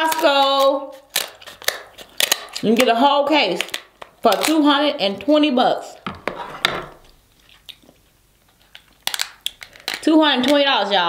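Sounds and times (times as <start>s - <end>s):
crab shell cracking: 0.0s - 4.7s, 7.1s - 10.1s.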